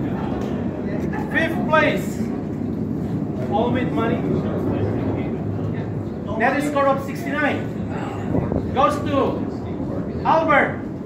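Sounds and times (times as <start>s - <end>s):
low background rumble: 0.0s - 11.0s
man speaking: 10.2s - 10.8s.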